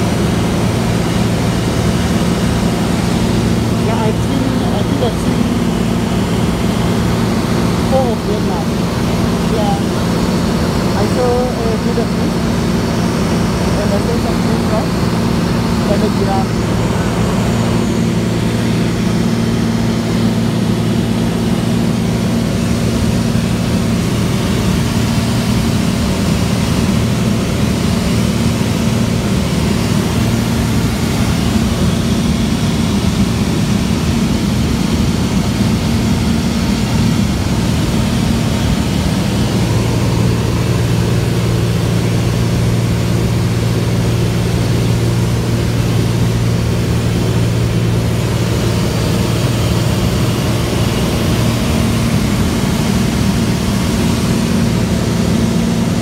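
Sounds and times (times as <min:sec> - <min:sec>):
light aircraft engine droning: 0:00.0 - 0:56.0.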